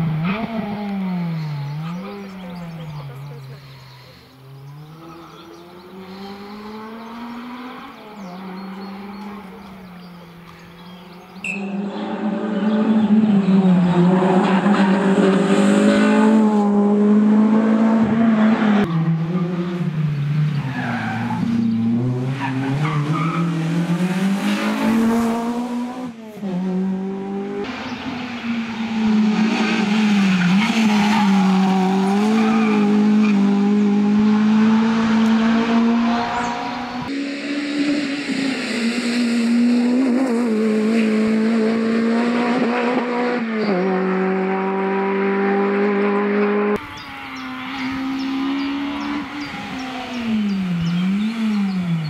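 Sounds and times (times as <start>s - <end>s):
rally car engine accelerating: 4.6s - 52.0s.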